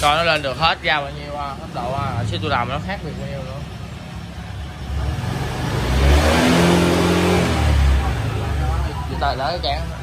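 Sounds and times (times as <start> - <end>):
scooter engine revving: 1.6 - 10.0.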